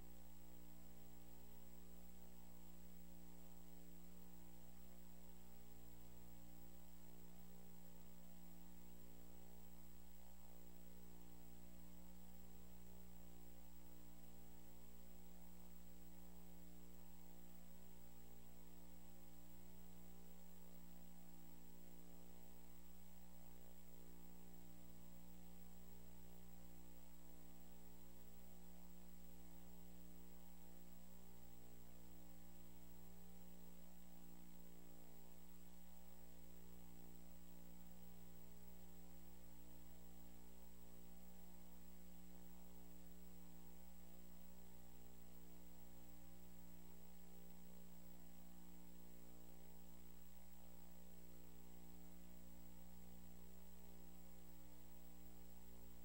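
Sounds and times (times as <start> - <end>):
electrical mains hum: 0.0 - 56.0.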